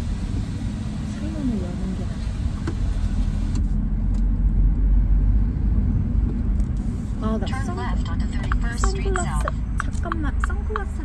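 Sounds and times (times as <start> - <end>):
car cabin road and engine rumble: 0.0 - 11.0
person talking: 7.3 - 11.0.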